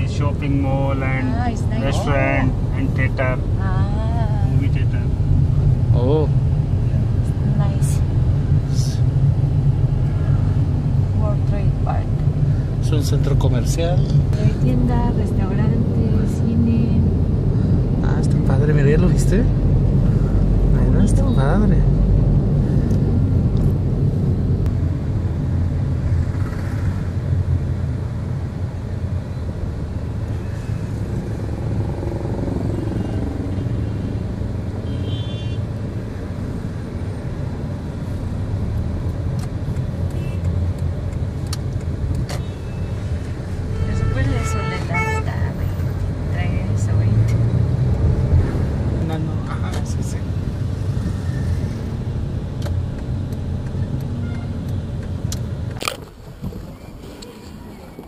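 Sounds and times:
car engine and road rumble: 0:00.0 - 0:58.0
vehicle horn toots: 0:34.8 - 0:35.6, 0:43.7 - 0:45.3, 0:54.2 - 0:54.6.

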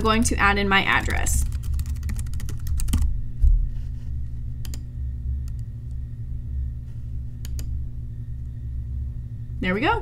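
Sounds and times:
low steady hum: 0:00.0 - 0:10.0
computer mouse clicks: 0:04.6 - 0:04.9, 0:07.4 - 0:07.7.

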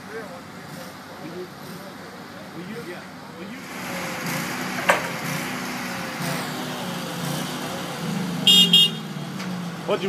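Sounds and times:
heavy machinery engine running: 0:03.5 - 0:10.0
short high-pitched horn toots: 0:08.5 - 0:09.1.

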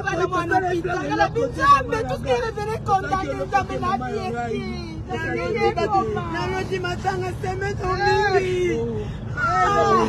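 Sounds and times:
low steady vehicle rumble: 0:00.0 - 0:10.0
people's voices wavering: 0:00.0 - 0:10.0.

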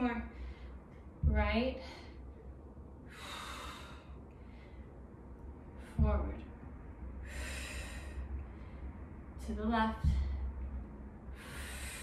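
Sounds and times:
low steady hum: 0:00.0 - 0:12.0
woman exhaling forcefully: 0:07.2 - 0:08.3, 0:11.3 - 0:12.0.

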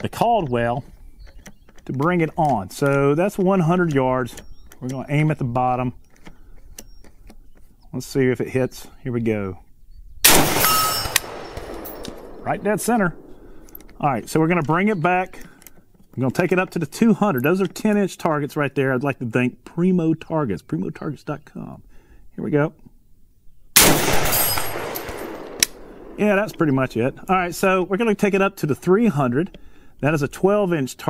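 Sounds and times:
rifle shot: 0:10.2 - 0:13.6, 0:23.8 - 0:26.6
bullet ringing on steel target: 0:10.3 - 0:12.4, 0:23.8 - 0:25.4.

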